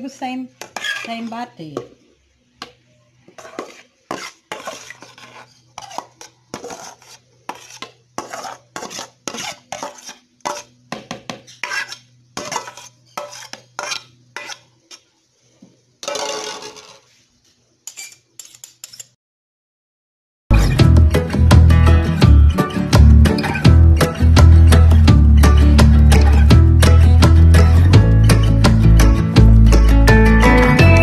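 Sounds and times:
metal spoon scraping a bowl: 0.6s - 1.4s, 3.4s - 10.7s, 11.4s - 15.0s.

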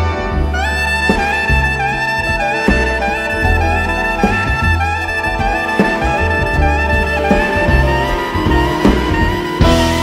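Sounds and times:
double bass notes: 0.0s - 10.0s
orchestra playing: 0.0s - 10.0s
soprano saxophone melody: 0.0s - 10.0s.

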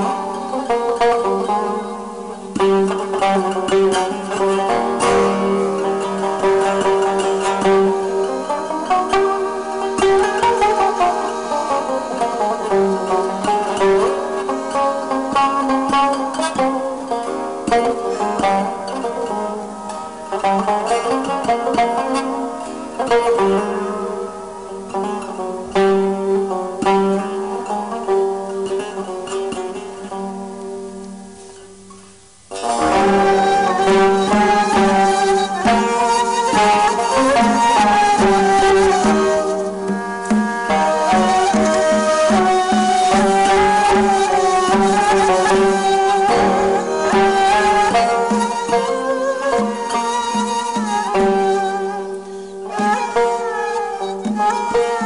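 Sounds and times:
reed flute held tones: 0.0s - 29.2s, 29.8s - 55.0s
bowed fiddle held tones: 0.0s - 55.0s
plucked lute melody: 0.0s - 55.0s.

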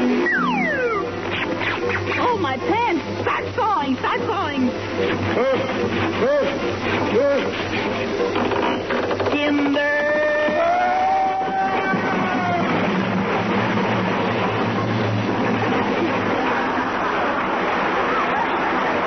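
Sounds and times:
held musical tones: 0.0s - 13.6s
radio comedy voices: 2.1s - 7.8s
studio audience applause: 9.8s - 14.8s, 15.5s - 19.0s.

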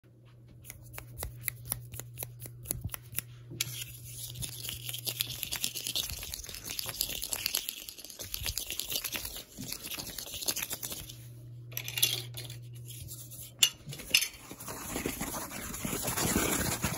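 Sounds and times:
plastic crinkling: 3.7s - 11.2s, 14.1s - 16.9s.

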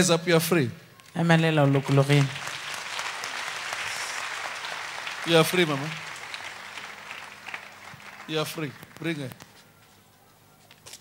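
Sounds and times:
congregation applauding: 1.5s - 9.6s.

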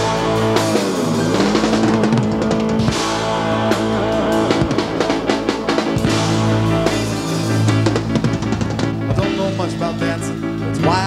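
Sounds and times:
drum hits: 0.0s - 10.3s
rock band playing: 0.0s - 11.0s.

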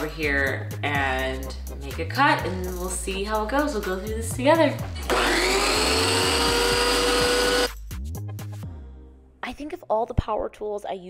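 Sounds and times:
wet tile saw running: 5.1s - 7.7s.

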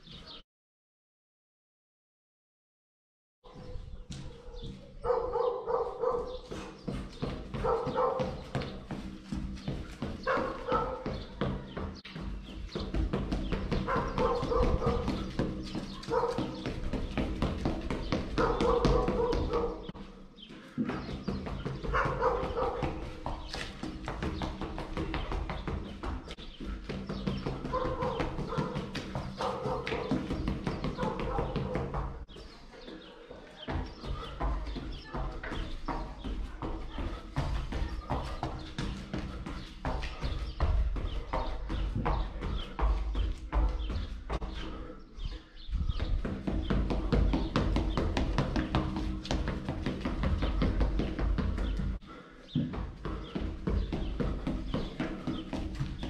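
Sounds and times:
rapid footsteps on concrete: 3.5s - 56.0s.

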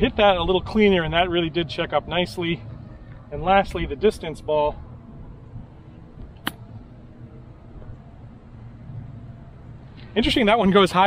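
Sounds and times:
faint low background rumble: 0.0s - 11.0s.

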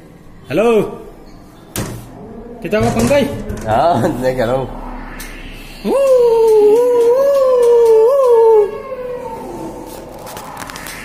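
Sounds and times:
long wavering howl: 2.1s - 2.8s, 3.6s - 11.0s.

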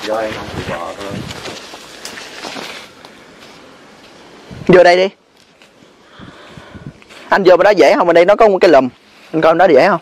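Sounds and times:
shrub branches rustling: 0.0s - 10.0s
twigs crackling: 0.0s - 10.0s.

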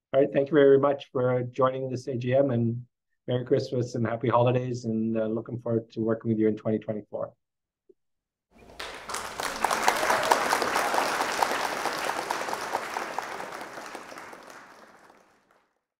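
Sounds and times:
hands clapping: 8.6s - 15.7s.

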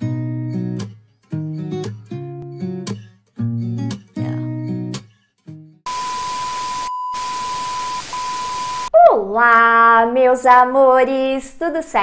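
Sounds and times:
static hiss: 5.9s - 8.9s
steady high beep tone: 5.9s - 8.9s.

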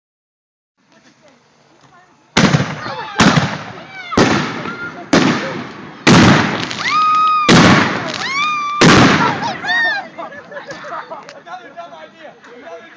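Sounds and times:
fireworks bangs echoing: 2.4s - 9.8s.

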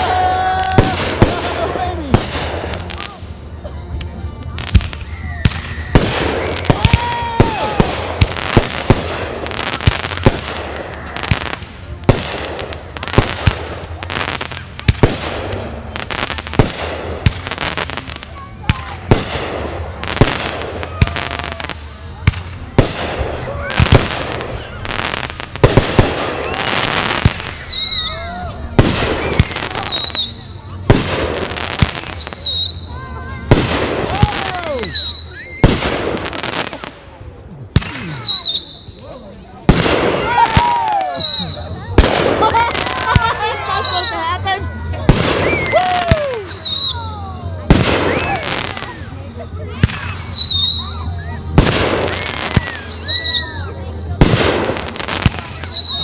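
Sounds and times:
fireworks bursting with sharp bangs: 0.0s - 56.0s.

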